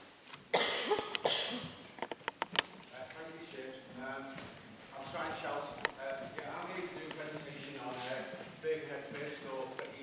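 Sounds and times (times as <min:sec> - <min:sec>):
person coughing: 0:00.5 - 0:01.8.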